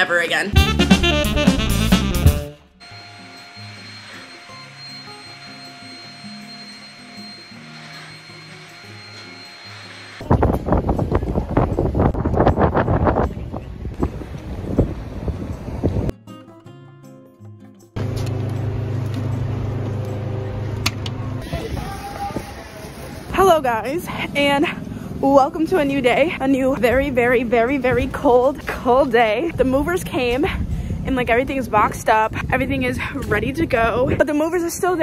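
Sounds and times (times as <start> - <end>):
street noise: 0.0 - 16.1, 18.0 - 35.0
wind rushing on microphone: 10.2 - 16.1, 21.4 - 23.3, 29.5 - 35.0.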